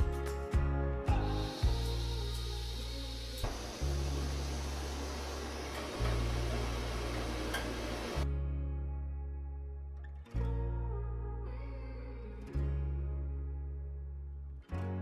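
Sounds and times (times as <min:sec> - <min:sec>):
guitar music with bass: 0:00.0 - 0:15.0
gas stove burner hissing: 0:01.2 - 0:08.2.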